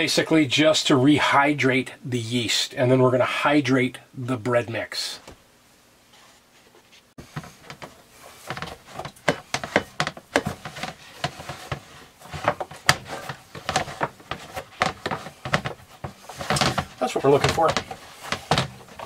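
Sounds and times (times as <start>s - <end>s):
hands kneading wet dough: 7.2s - 19.0s
plastic tub knocking: 7.2s - 19.0s.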